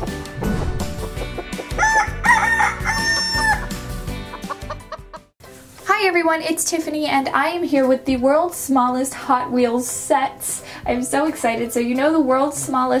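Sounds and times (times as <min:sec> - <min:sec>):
music: 0:00.0 - 0:13.0
held crow-like call: 0:01.8 - 0:03.8
cartoon chicken clucks: 0:04.3 - 0:05.2.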